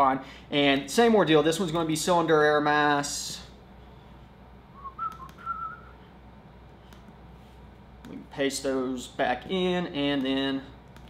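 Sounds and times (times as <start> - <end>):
man whistling: 4.7 - 6.0.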